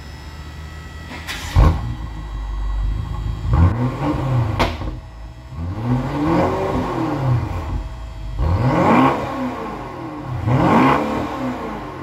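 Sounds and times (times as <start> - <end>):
car engine idling and revving: 0.0 - 12.0.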